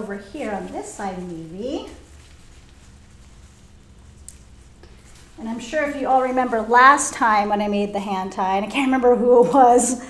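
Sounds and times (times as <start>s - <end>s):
flower stems being handled: 0.0s - 8.1s
steady low hum: 0.0s - 10.0s.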